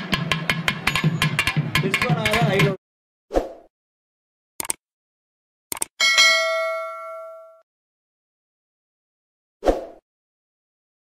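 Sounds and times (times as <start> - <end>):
clicks: 4.6 - 4.8, 5.7 - 5.9
notification bell ding: 6.0 - 7.6.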